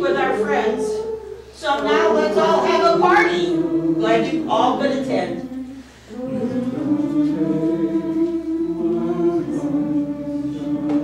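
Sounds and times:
small group singing held chord: 0:00.0 - 0:11.0.

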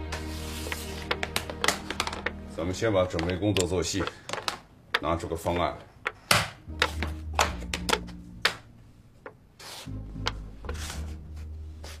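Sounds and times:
chess pieces clacking on board: 0:00.6 - 0:02.4, 0:03.0 - 0:08.6.

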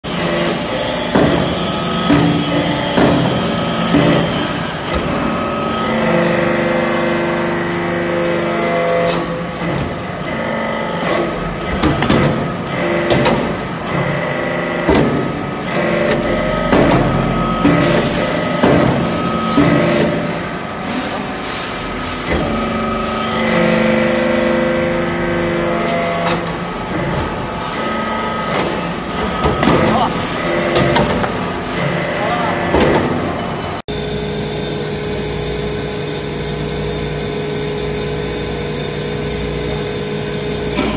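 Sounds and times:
hydraulic unit running: 0:00.0 - 0:40.9.

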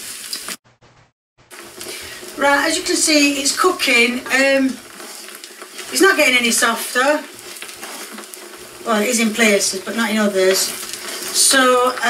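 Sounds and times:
rice sizzling in a wok: 0:00.0 - 0:00.6, 0:01.5 - 0:12.0.

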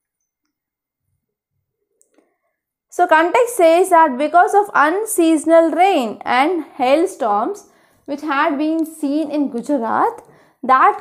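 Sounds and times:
woman's voice: 0:03.0 - 0:11.0.

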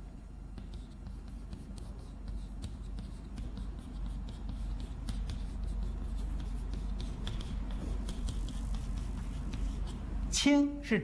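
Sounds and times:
chalk writing on blackboard: 0:00.5 - 0:10.3.

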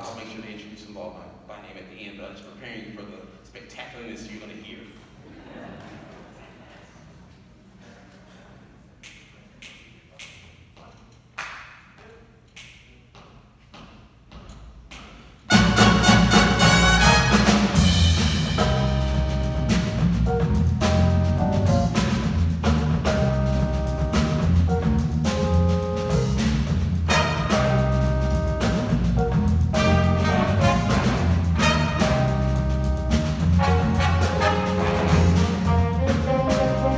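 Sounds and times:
jazz big band playing: 0:15.4 - 0:36.9.

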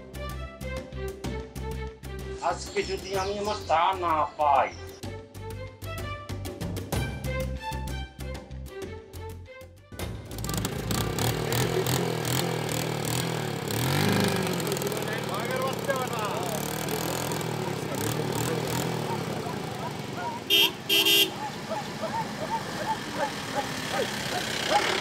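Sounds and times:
small motorcycle engine running: 0:10.0 - 0:25.0
vehicle horn toots: 0:20.5 - 0:21.4.

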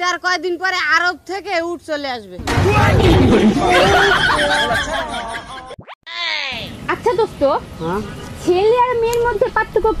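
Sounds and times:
loud noise: 0:02.4 - 0:04.4.

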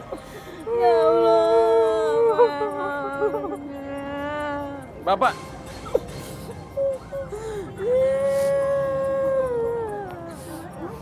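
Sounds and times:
woman weeping and wailing: 0:00.0 - 0:05.0, 0:05.7 - 0:11.0.

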